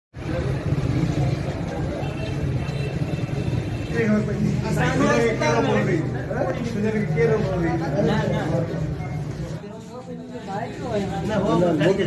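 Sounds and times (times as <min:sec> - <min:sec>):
steady low street rumble: 0:00.2 - 0:12.0.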